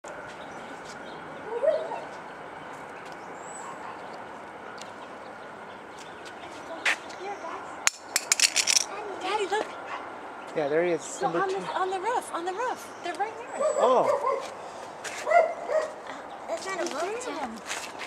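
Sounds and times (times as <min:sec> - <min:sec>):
outdoor background hiss: 0:00.1 - 0:18.0.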